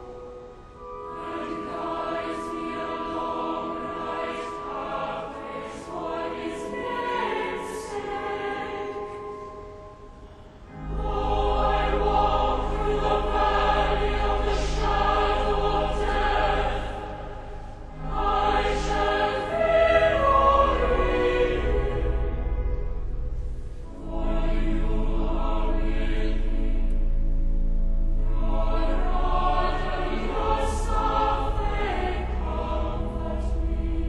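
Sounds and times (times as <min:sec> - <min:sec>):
choir singing: 0:00.0 - 0:34.0.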